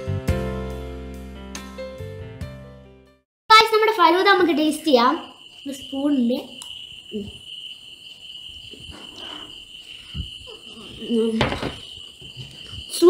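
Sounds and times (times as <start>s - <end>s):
steady high-pitched tone: 3.8s - 13.0s.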